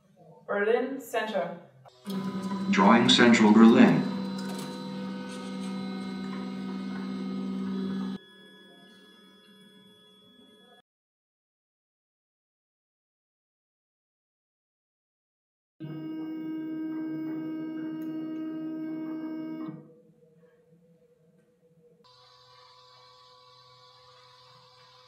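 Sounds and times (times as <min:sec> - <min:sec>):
stepper motors humming: 0:01.9 - 0:08.2.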